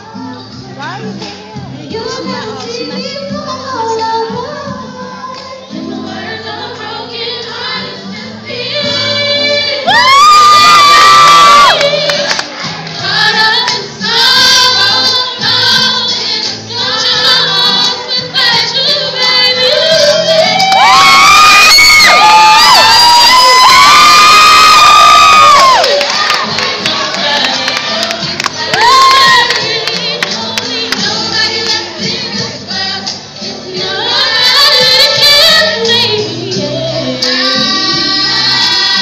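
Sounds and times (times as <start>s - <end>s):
choir singing: 4.9s - 9.9s, 11.6s - 20.8s, 25.6s - 39.0s
crowd cheering: 9.8s - 12.6s, 20.6s - 31.0s.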